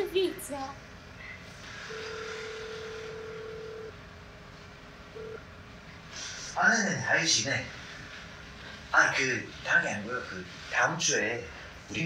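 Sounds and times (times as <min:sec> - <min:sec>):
telephone ringback tone: 0:01.8 - 0:04.0, 0:05.1 - 0:05.4.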